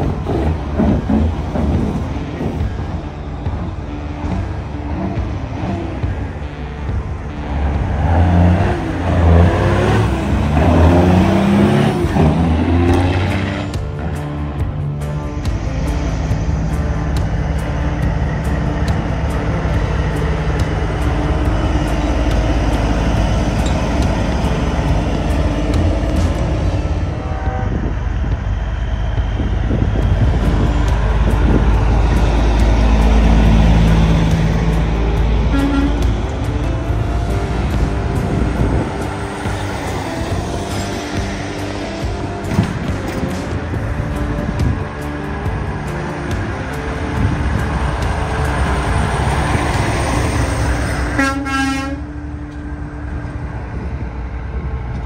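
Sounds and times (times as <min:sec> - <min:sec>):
diesel truck engines: 0:00.0 - 0:55.0.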